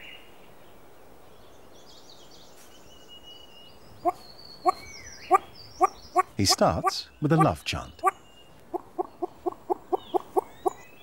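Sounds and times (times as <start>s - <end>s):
small birds chirping and whistling: 1.8s - 11.0s
bird courtship calls: 3.9s - 11.0s.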